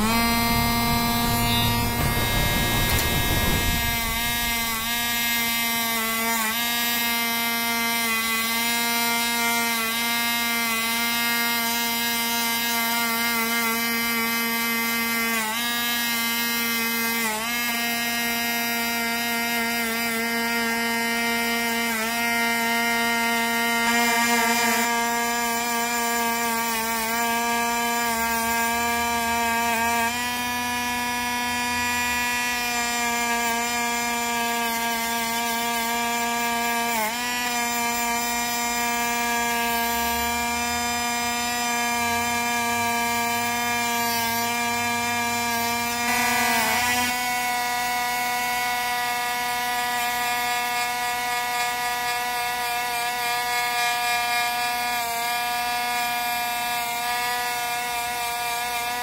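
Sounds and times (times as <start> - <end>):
rotary tool motor whining: 0.0 - 59.0.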